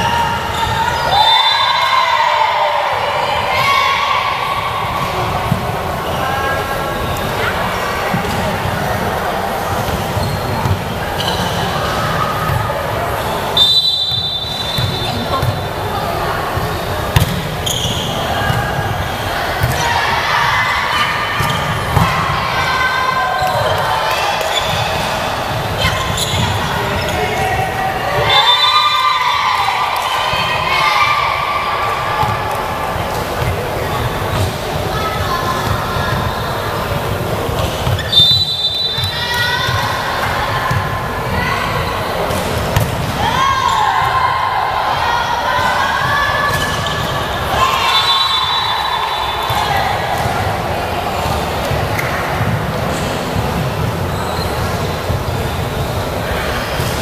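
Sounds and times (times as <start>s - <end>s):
people shouting: 0.0s - 6.8s, 18.1s - 32.9s, 43.1s - 50.7s
players calling out: 0.0s - 57.0s
referee's whistle: 0.6s - 1.9s, 13.5s - 15.7s, 17.6s - 18.2s, 28.3s - 29.1s, 38.0s - 39.3s, 46.6s - 49.7s
volleyball being struck: 17.1s - 17.5s.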